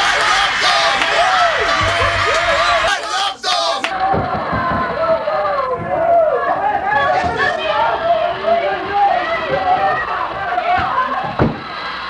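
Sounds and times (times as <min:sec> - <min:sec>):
crowd chatter and shouting: 0:00.0 - 0:12.0.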